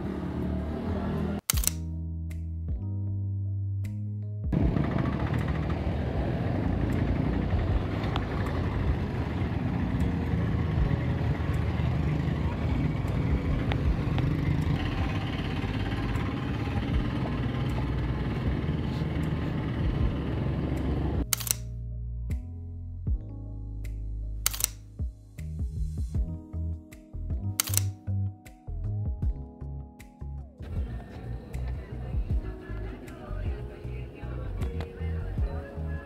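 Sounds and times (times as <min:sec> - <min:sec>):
street traffic: 0:00.0 - 0:01.8, 0:04.5 - 0:21.7, 0:30.6 - 0:36.0
background music: 0:00.0 - 0:36.0
camera shutter click: 0:01.5 - 0:01.9, 0:21.2 - 0:21.7, 0:24.5 - 0:24.8, 0:27.6 - 0:28.0
motorcycles passing: 0:04.6 - 0:21.2.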